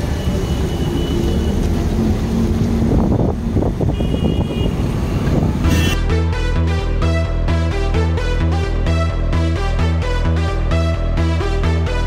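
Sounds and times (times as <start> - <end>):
auto-rickshaw engine: 0.0 - 6.0
wind buffeting microphone: 1.8 - 5.7.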